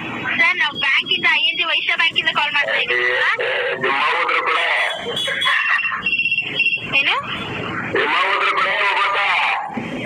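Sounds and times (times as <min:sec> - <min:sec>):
person talking on phone: 0:01.7 - 0:05.9, 0:08.0 - 0:09.7.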